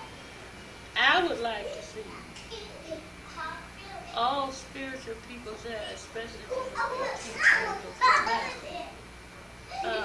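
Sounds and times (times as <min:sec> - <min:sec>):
high child-like voices: 0:01.9 - 0:04.3, 0:06.5 - 0:09.0.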